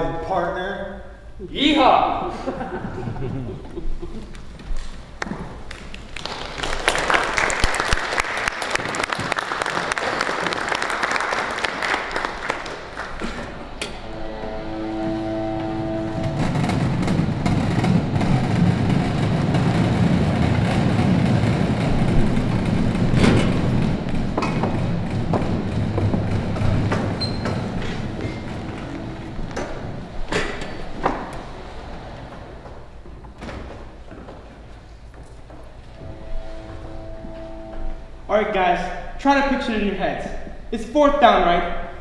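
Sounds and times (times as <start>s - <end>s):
low rumbling noise: 0.0s - 39.2s
audience applauding: 4.1s - 13.7s
steady horn-like tone: 13.0s - 20.0s, 21.8s - 32.2s, 35.9s - 39.1s.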